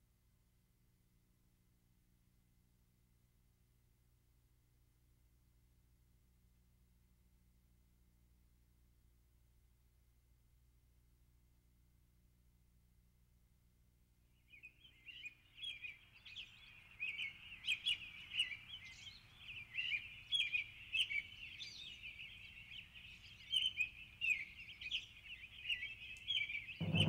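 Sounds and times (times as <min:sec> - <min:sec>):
birds chirping: 0:22.0 - 0:27.0.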